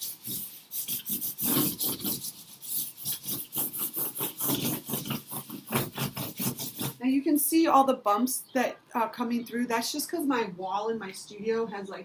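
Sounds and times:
charcoal scraping on paper: 0.0s - 7.0s.

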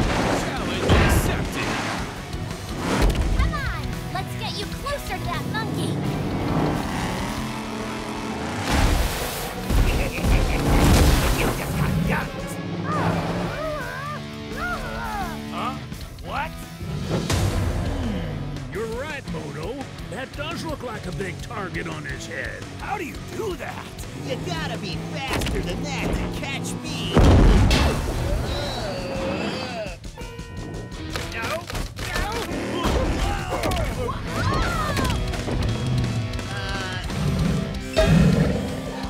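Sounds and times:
heavy crash and boom impacts: 0.0s - 3.4s, 27.2s - 28.4s
cartoon action music: 0.0s - 39.0s.

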